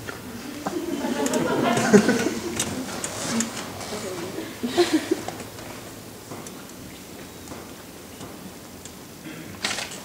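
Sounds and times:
auditorium background noise: 0.0s - 10.0s
audience laughter: 0.4s - 5.4s.

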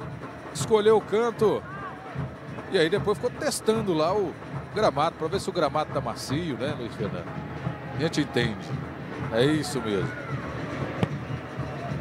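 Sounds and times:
stadium crowd murmur: 0.0s - 12.0s
ball kicked thud: 11.0s - 11.2s.

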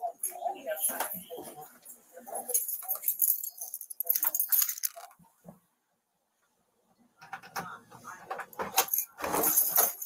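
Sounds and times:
keys jangling: 2.5s - 5.1s.

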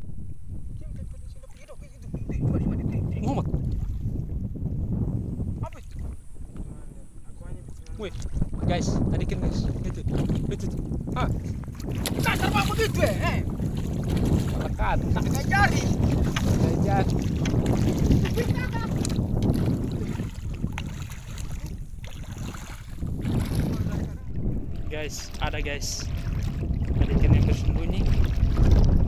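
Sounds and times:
wind buffeting microphone: 0.0s - 29.0s
person wading through water: 11.4s - 29.0s.

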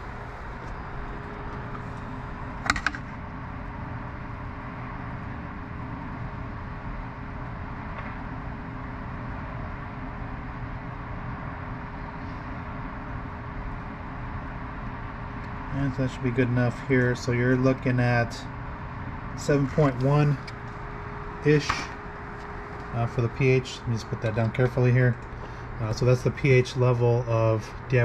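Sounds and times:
faint constant tone: 0.0s - 28.0s
room hum: 0.0s - 28.0s.

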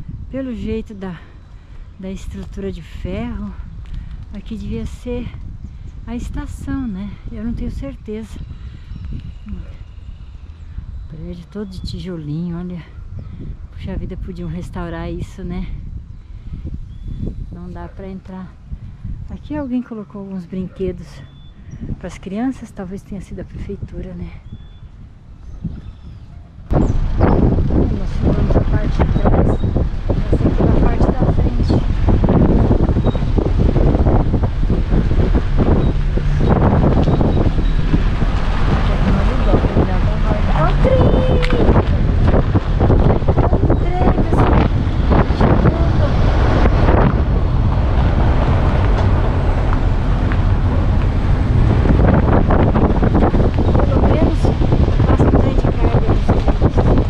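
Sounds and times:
wind buffeting microphone: 0.0s - 57.0s
wind rumbling on microphone: 0.0s - 57.0s.

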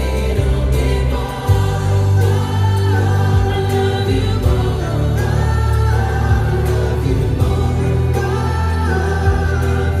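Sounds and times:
bass-heavy backing music: 0.0s - 10.0s
group singing pop ballad in harmony: 0.0s - 10.0s.

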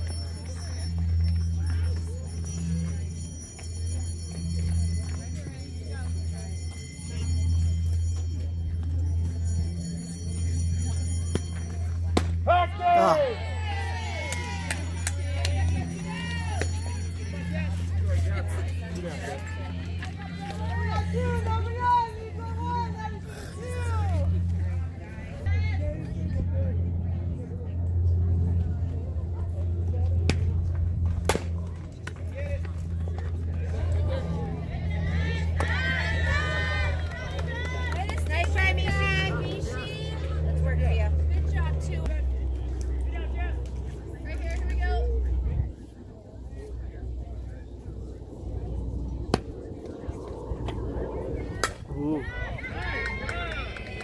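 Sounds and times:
voices calling out and chanting: 0.0s - 28.6s, 32.8s - 54.0s
steady low rumble: 0.0s - 54.0s
softball bat hitting ball: 31.2s - 31.5s.

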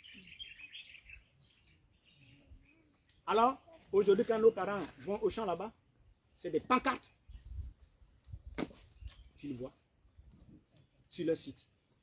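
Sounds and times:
faint bird chirping: 0.0s - 4.6s, 8.8s - 9.9s.

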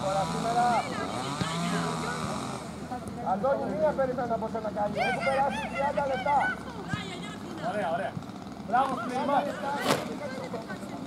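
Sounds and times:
small engine revving: 0.0s - 2.9s
voices: 0.0s - 11.0s.

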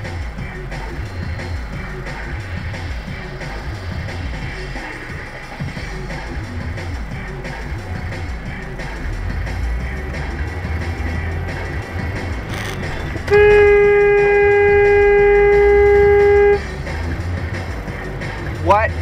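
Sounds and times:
car engine: 0.0s - 19.0s
music playing: 0.0s - 19.0s
road rumble: 0.0s - 19.0s
car horn blast: 12.3s - 16.8s.

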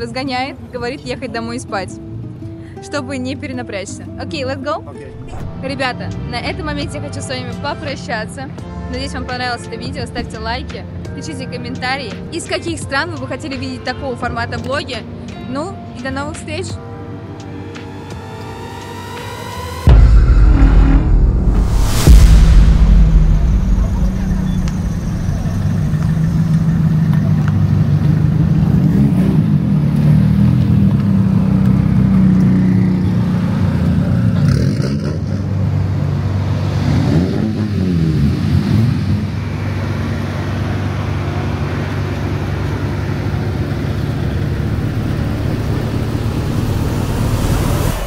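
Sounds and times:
car engines revving: 5.0s - 9.1s, 17.0s - 48.0s.

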